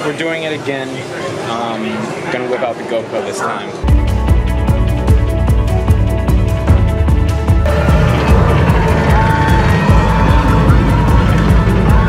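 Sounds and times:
background music: 3.8s - 12.0s
roller coaster train rumbling on track: 7.6s - 12.0s.

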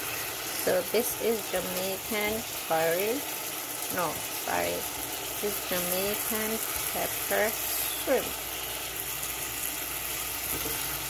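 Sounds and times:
shrimp sizzling in saucepan: 0.0s - 11.0s.

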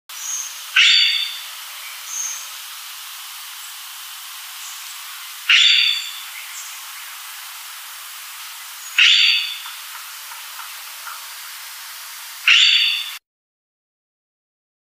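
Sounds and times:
steady hiss: 0.1s - 13.2s
pheasant calling: 0.2s - 2.6s, 4.5s - 11.8s, 12.4s - 13.2s.

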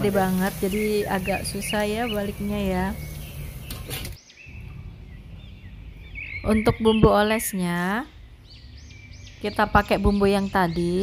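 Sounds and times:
small birds chirping faintly: 0.0s - 11.0s.

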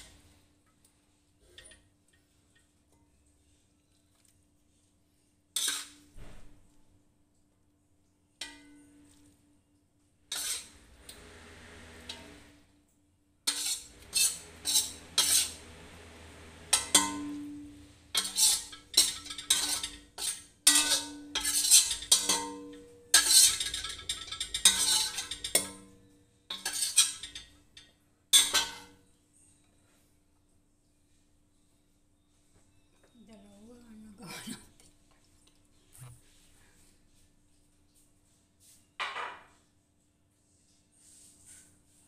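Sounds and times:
metal spatula scraping wok: 5.6s - 6.1s, 10.3s - 12.6s, 13.5s - 27.6s, 28.4s - 29.0s.

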